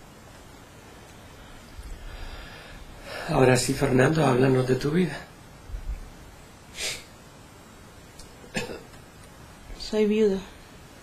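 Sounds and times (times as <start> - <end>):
low room noise: 0.0 - 11.0
person coughing: 8.5 - 9.0
woman speaking: 9.7 - 10.6.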